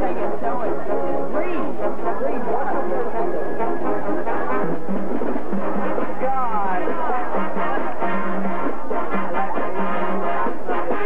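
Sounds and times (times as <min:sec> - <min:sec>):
low brass notes: 0:00.0 - 0:11.0
marching band playing: 0:03.6 - 0:11.0.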